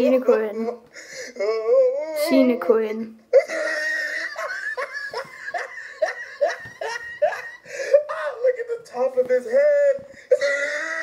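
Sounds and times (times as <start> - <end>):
person laughing hard: 3.4 - 8.2, 10.3 - 11.0.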